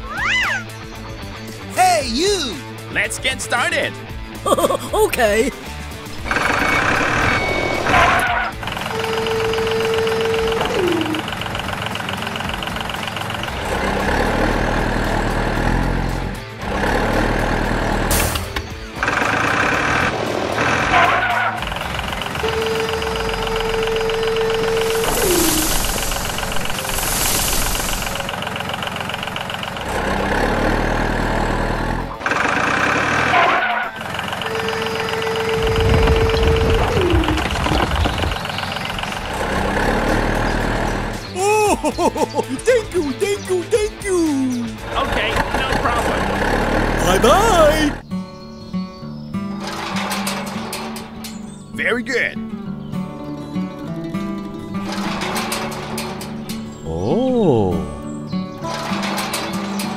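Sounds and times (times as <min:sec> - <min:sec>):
background music: 0:00.0 - 0:26.7, 0:39.2 - 0:59.9
truck engine sound effects: 0:00.0 - 0:48.0, 0:54.4 - 0:59.9.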